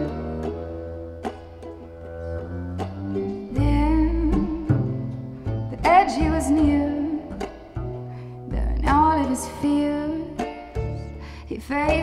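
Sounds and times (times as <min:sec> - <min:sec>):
bowed double bass: 0:00.0 - 0:12.0
plucked strings: 0:00.0 - 0:12.0.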